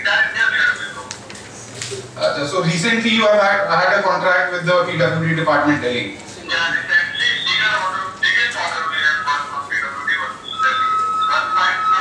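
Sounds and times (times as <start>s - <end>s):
phone conversation over loudspeakers: 0.0s - 12.0s.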